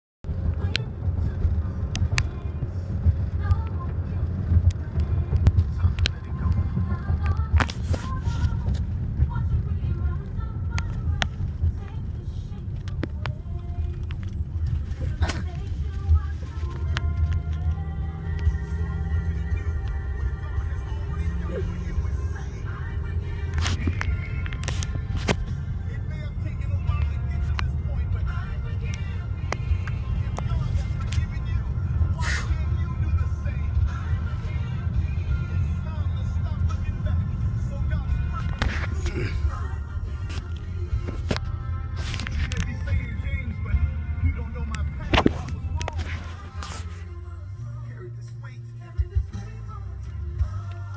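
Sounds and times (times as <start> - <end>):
car road rumble: 0.2 - 50.9
music playing: 0.3 - 50.9.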